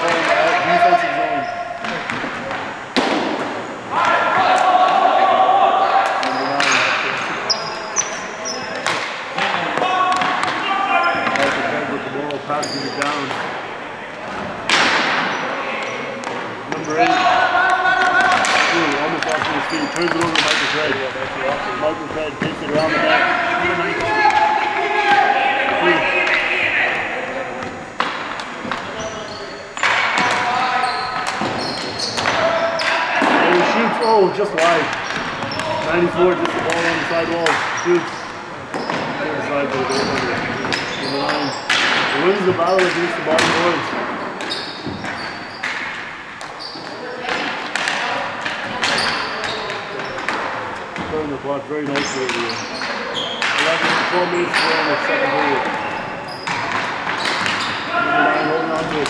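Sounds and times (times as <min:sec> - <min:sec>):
voices talking and calling: 0:00.0 - 0:59.0.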